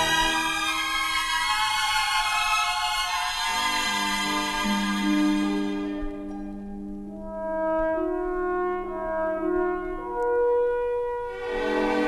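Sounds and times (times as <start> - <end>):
slow french horn melody: 3.4 - 12.0.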